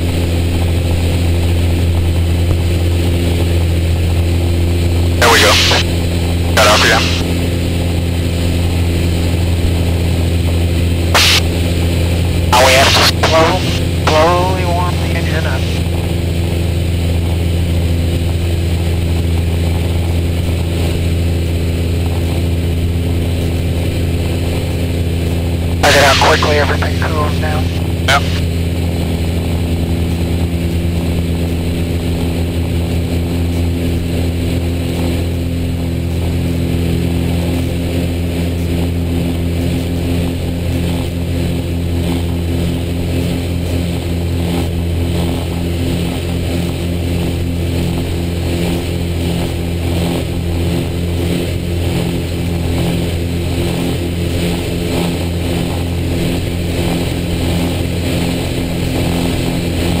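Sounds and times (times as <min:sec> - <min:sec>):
aircraft engine drone in cockpit: 0:00.0 - 1:00.0.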